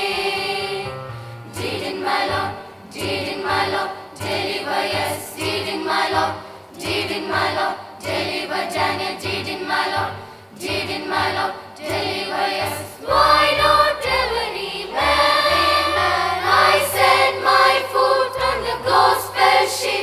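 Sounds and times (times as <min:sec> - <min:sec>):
children's choir singing: 0:00.0 - 0:20.0
electronic keyboard accompaniment: 0:00.0 - 0:20.0.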